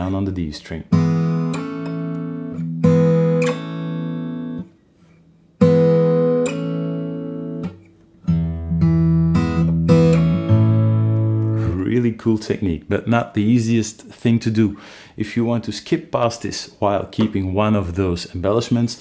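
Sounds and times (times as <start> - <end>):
fingerpicked acoustic guitar chords: 0.9 - 12.0.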